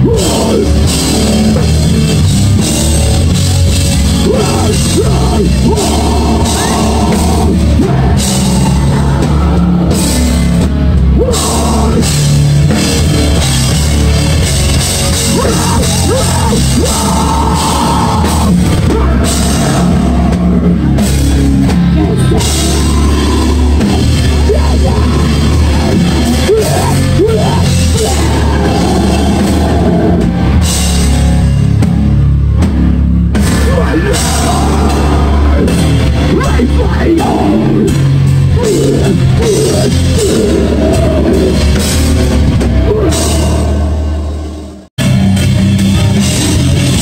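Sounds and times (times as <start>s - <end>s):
distorted electric guitar: 0.0s - 47.0s
drum kit with cymbals: 0.0s - 47.0s
heavy rock band playing: 0.0s - 47.0s
low bass: 0.0s - 47.0s.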